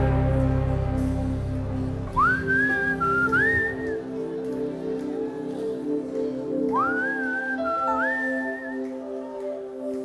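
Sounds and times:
electronic keyboard chords: 0:00.0 - 0:10.0
high whistle-like melody: 0:02.1 - 0:04.4, 0:06.5 - 0:09.3.

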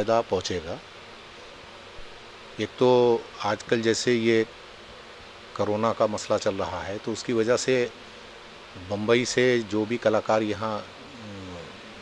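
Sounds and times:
low room hiss: 0:00.0 - 0:12.0
man speaking: 0:08.8 - 0:12.0.

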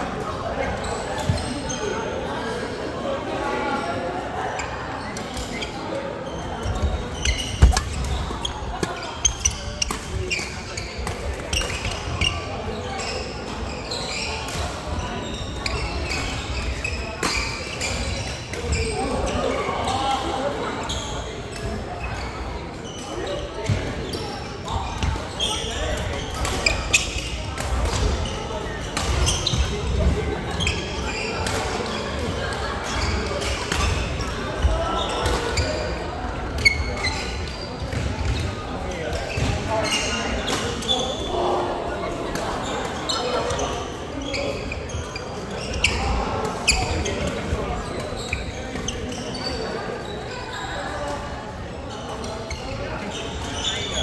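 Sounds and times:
babble of voices: 0:00.0 - 0:54.0.

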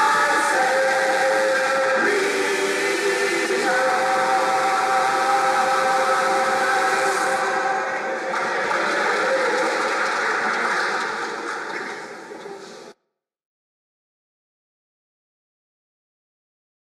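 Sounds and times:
choir singing sustained chord: 0:00.0 - 0:08.4
audience applause: 0:08.1 - 0:12.0.

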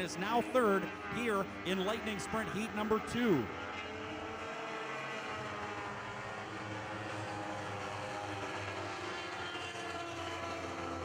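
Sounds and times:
racing car engines droning: 0:00.0 - 0:11.0.

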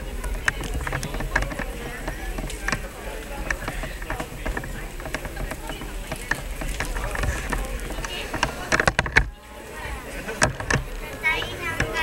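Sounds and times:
indistinct chatter of people: 0:00.0 - 0:12.0
sharp clicks and knocks: 0:00.2 - 0:09.4, 0:10.4 - 0:12.0.

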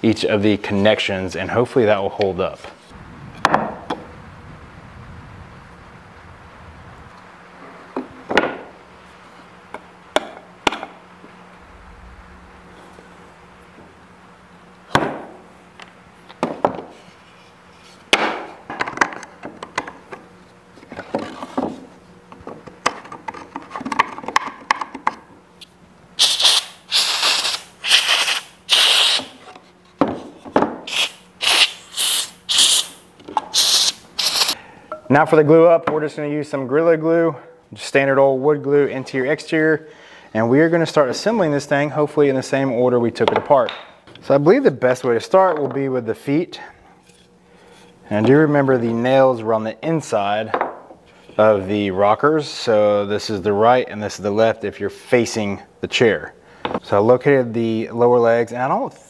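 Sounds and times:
air blow gun hissing blasts: 0:26.2 - 0:29.4, 0:30.9 - 0:34.6.

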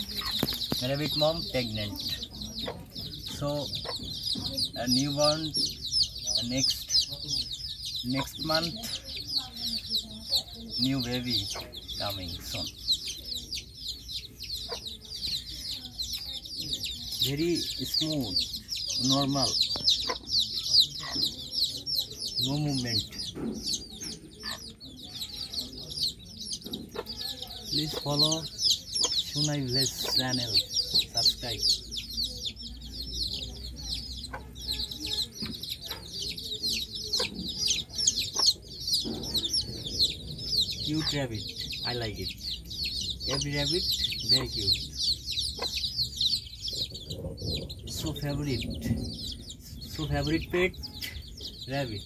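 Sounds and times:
small birds chirping: 0:00.0 - 0:52.0.

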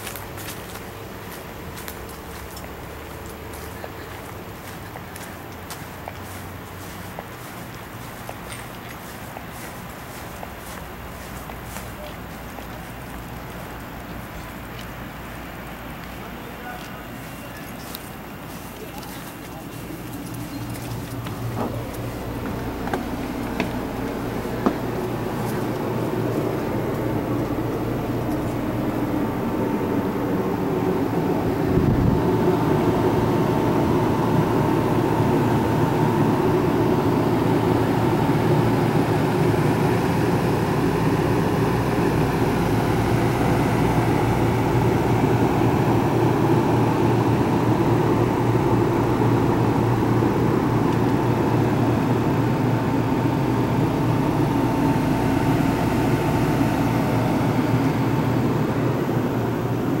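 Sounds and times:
loud mechanical hum: 0:00.0 - 1:00.0
thin steady whine: 0:00.0 - 1:00.0.

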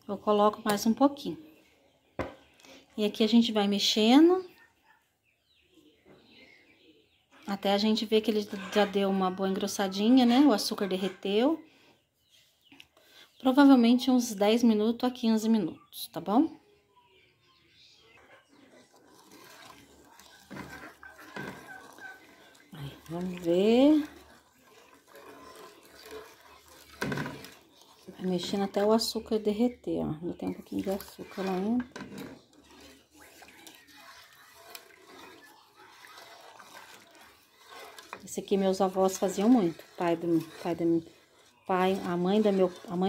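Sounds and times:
liquid sloshing in a pot: 0:18.1 - 0:43.0
spoon scraping pan: 0:18.1 - 0:43.0
wooden spoon stirring syrup in pan: 0:18.2 - 0:43.0.

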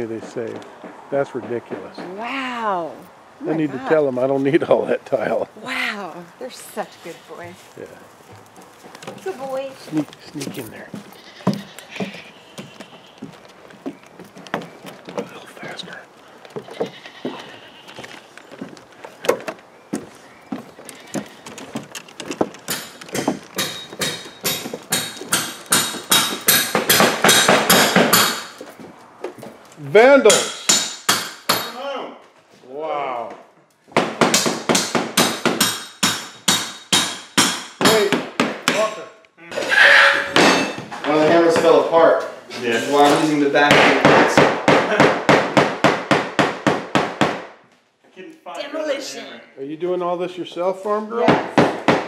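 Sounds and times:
knocks and clatters: 0:20.6 - 0:28.7
hammer striking chisel: 0:22.7 - 0:28.6, 0:30.3 - 0:31.8, 0:34.0 - 0:39.0.

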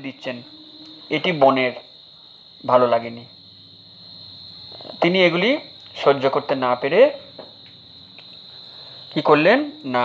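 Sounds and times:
man speaking: 0:00.0 - 0:00.5, 0:01.1 - 0:01.8, 0:02.6 - 0:03.3, 0:04.9 - 0:07.2
high-pitched background trill: 0:00.0 - 0:01.9.

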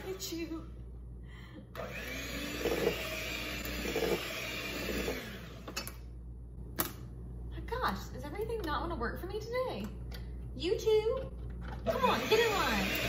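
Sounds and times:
electric hand mixer whirring: 0:01.8 - 0:05.8, 0:11.9 - 0:13.0.

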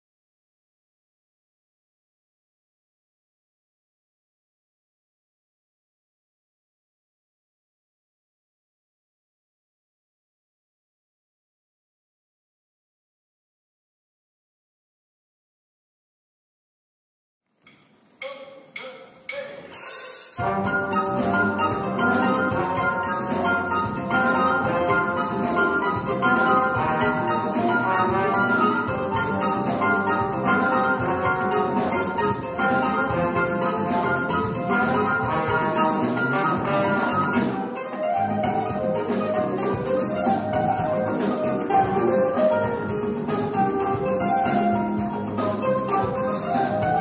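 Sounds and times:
drumstick clicks: 0:17.6 - 0:20.1
drum kit: 0:17.7 - 0:47.0
hand percussion: 0:17.7 - 0:47.0
plucked strings: 0:20.4 - 0:47.0
trumpet melody: 0:20.4 - 0:47.0.

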